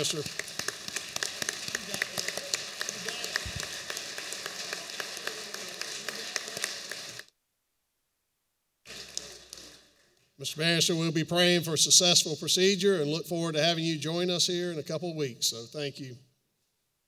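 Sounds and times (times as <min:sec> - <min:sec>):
crowd applause: 0:00.0 - 0:07.3, 0:08.9 - 0:10.2.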